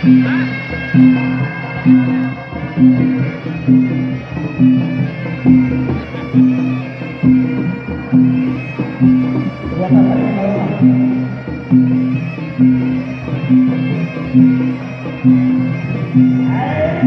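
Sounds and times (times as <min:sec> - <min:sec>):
low gong-like beat: 0:00.0 - 0:17.0
reedy wind instrument melody: 0:00.0 - 0:17.0.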